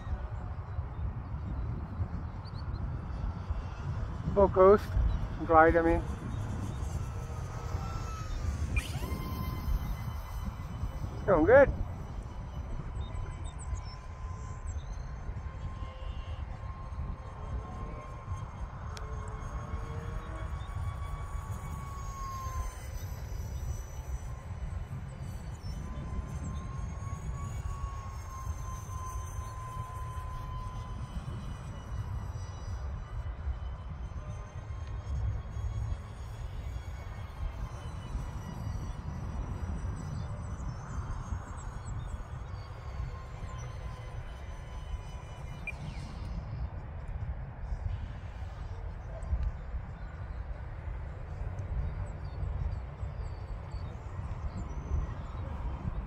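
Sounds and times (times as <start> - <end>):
electric ducted fans whining: 0.0 - 56.0
wind buffeting microphone: 0.0 - 56.0.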